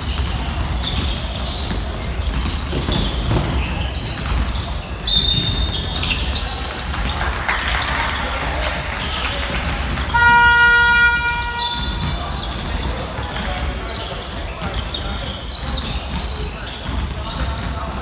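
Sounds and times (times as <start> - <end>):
basketball dribbled on wooden floor: 0.0 - 6.6, 9.0 - 18.0
referee's whistle: 5.0 - 6.2, 10.1 - 12.5
gym buzzer: 10.1 - 12.1.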